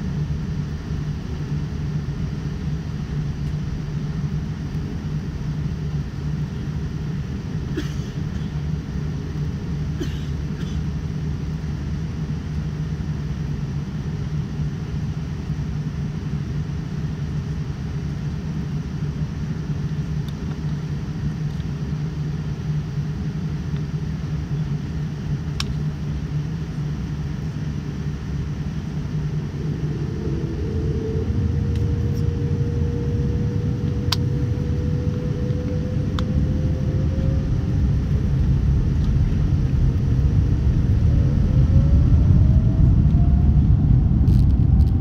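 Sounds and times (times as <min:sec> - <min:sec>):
airliner cabin rumble and hum: 0:00.0 - 0:45.0
high steady whine: 0:00.0 - 0:45.0.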